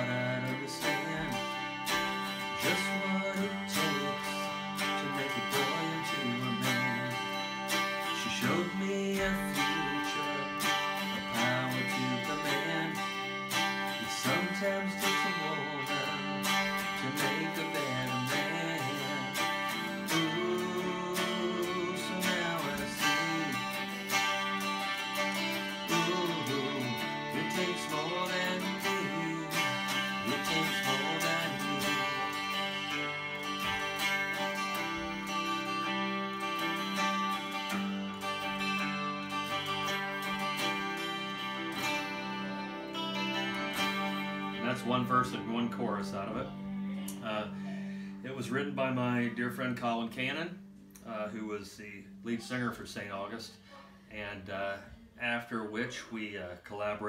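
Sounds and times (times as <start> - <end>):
electric guitar strumming chords: 0.0 - 55.1.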